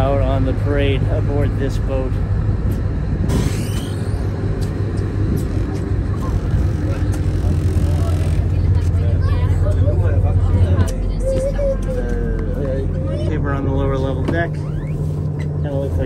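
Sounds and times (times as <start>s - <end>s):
boat diesel engine idling: 0.0s - 16.0s.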